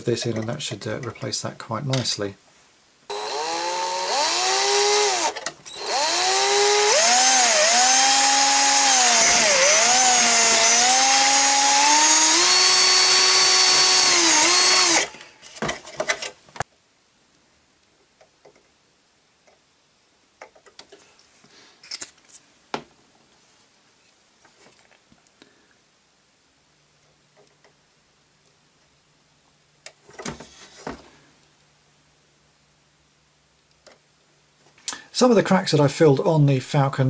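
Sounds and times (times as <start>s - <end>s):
cordless drill boring into plastic: 3.1s - 15.2s.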